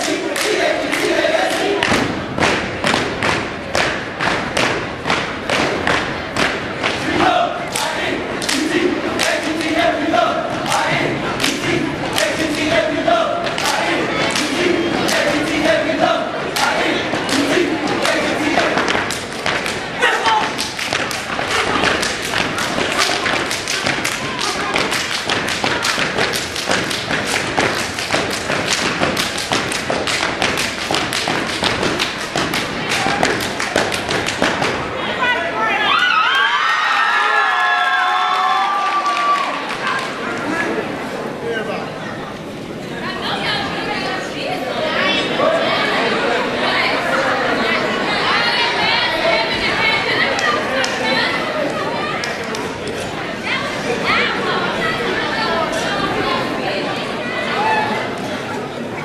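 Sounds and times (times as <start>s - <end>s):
group chant: 0.0s - 2.2s, 6.4s - 30.3s
stomps and claps in unison: 0.0s - 9.8s, 10.6s - 12.8s, 13.4s - 15.8s, 16.5s - 34.9s.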